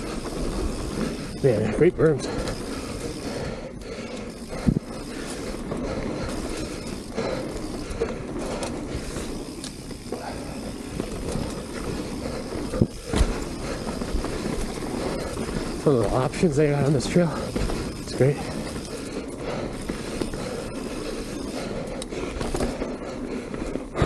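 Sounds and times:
bike rattle: 0.0 - 24.0
bike tyre rumble on dirt: 0.0 - 24.0.

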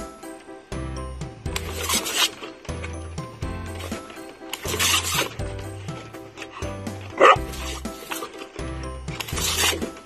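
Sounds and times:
upbeat background music: 0.0 - 10.0
hose spray nozzle hiss: 4.5 - 5.4.

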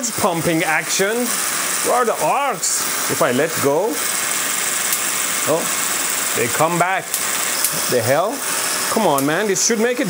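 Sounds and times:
motor-driven belt whirring hiss: 0.0 - 10.0
sharp spark snap: 4.1 - 5.2, 7.0 - 7.9, 9.1 - 9.4.

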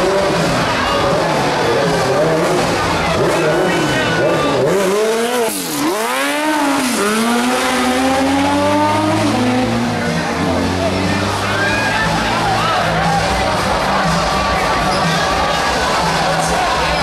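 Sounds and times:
car engine revving: 0.0 - 17.0.

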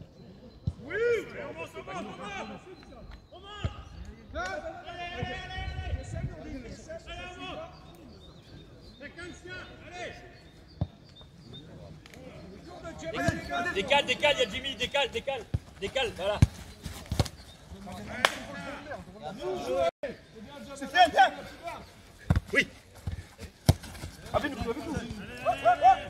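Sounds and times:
players shouting: 0.8 - 6.1, 12.2 - 16.8, 17.8 - 19.9, 20.5 - 26.0
football being kicked: 15.5 - 17.4, 22.2 - 25.3.

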